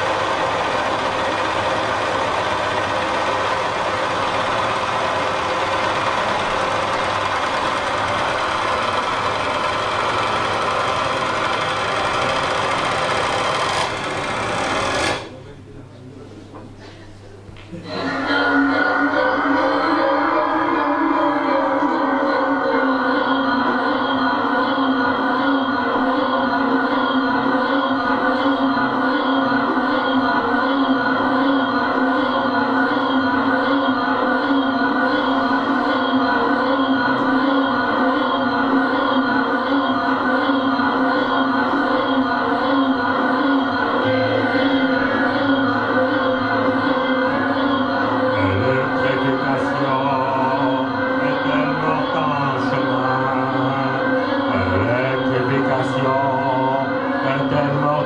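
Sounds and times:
band playing dense drone: 0.0 - 15.5, 17.9 - 58.0.

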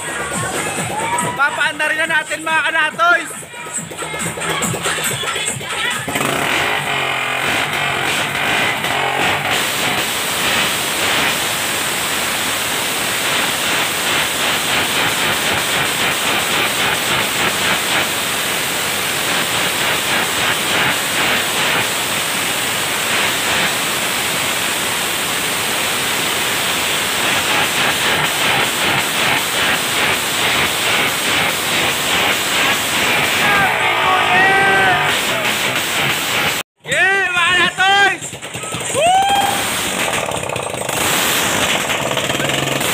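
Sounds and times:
music playing: 0.0 - 6.3, 33.1 - 35.5
motorcycle engine revving: 3.8 - 36.7, 38.2 - 42.9.

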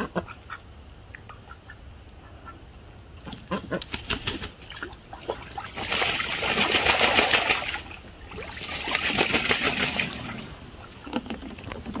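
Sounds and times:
duck splashing water: 3.2 - 12.0.

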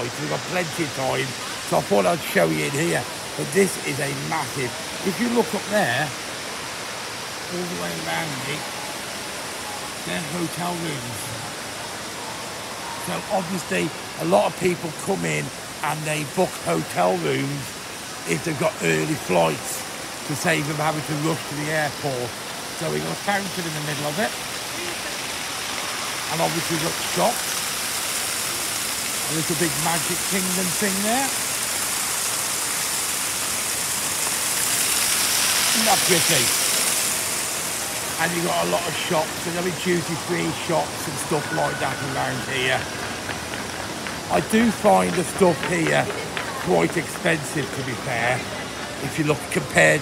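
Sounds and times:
water rushing from fountain: 0.0 - 50.0.

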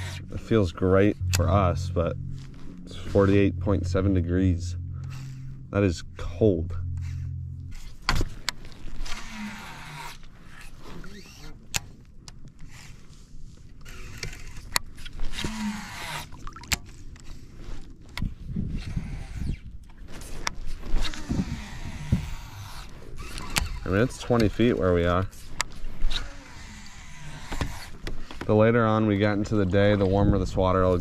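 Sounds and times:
fishing reel spool whirring: 0.0 - 12.0, 12.6 - 17.9, 20.6 - 28.4.

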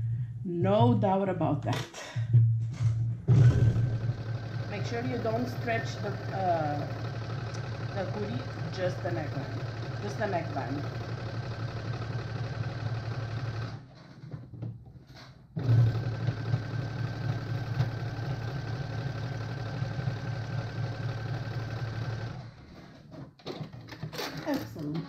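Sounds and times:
electric sewing machine running: 3.8 - 14.0, 15.6 - 22.7.

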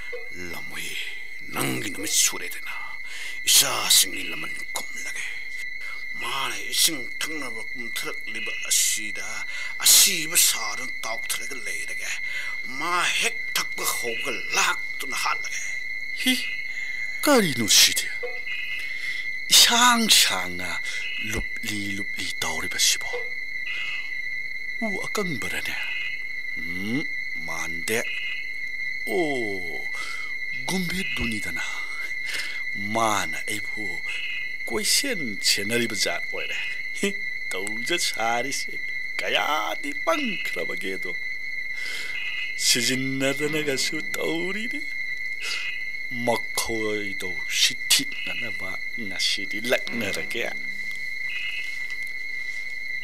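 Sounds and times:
crickets chirping: 0.0 - 53.0.

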